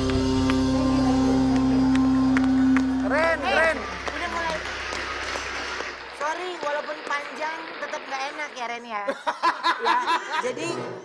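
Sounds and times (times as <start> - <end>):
live band holding a note: 0.0 - 5.7.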